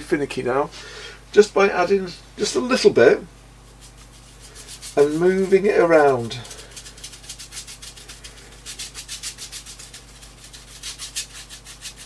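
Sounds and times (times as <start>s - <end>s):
paintbrush scrubbing on paper: 3.6s - 12.0s.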